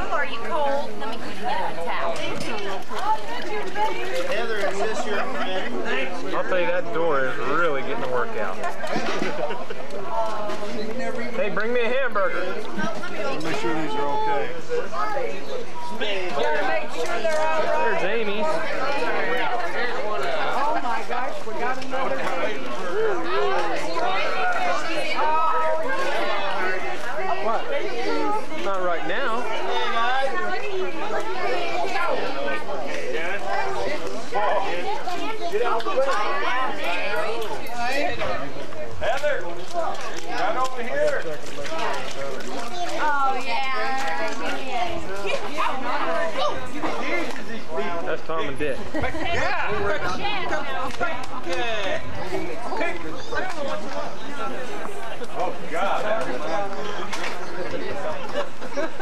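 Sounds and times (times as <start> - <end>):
overlapping chatter of voices: 0.0 - 59.0.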